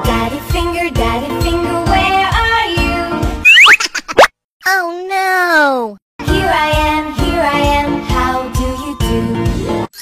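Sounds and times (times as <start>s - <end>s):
cartoon rising pop: 3.4s - 4.3s
cartoon voice sliding down: 3.5s - 4.3s.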